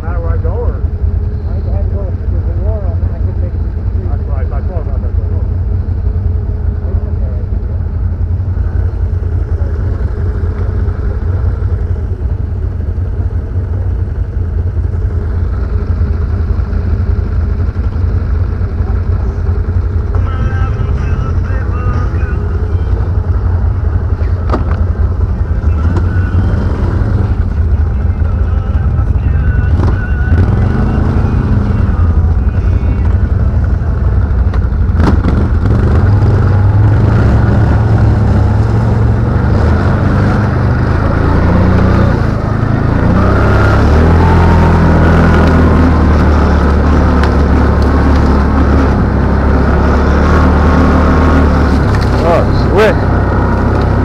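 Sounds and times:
engine rumbling: 0.0 - 54.0.

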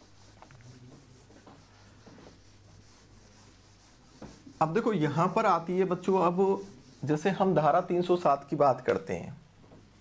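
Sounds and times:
duster rubbing on whiteboard: 0.0 - 8.3.

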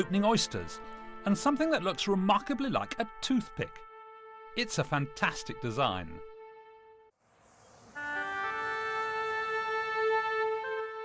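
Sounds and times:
soft background music chord: 0.0 - 7.1
soft hiss of wind: 7.2 - 10.7.

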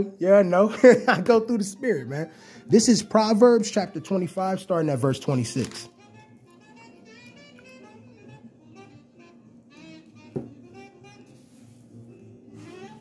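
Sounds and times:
faint background music: 0.0 - 13.0.

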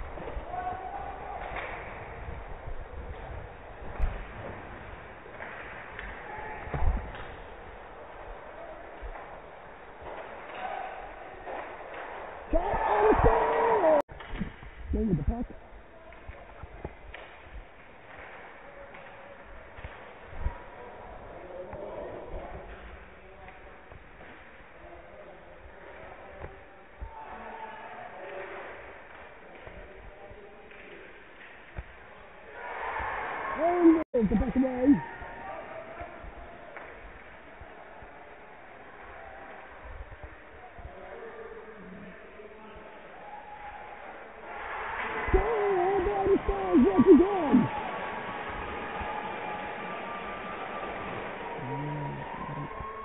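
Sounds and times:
faint spectator chatter: 45.1 - 48.2, 49.0 - 53.0
ice rink room hiss: 47.0 - 52.6.

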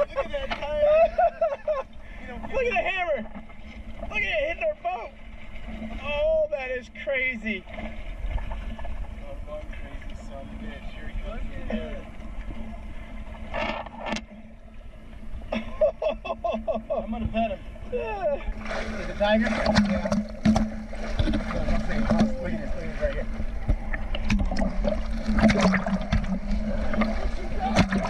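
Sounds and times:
water around boat: 0.0 - 28.0
voices: 21.2 - 23.4.

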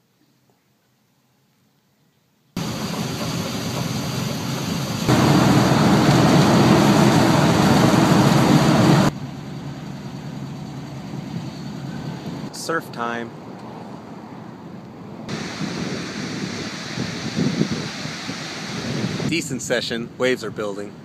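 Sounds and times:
vehicle engine and road noise: 2.6 - 16.6.

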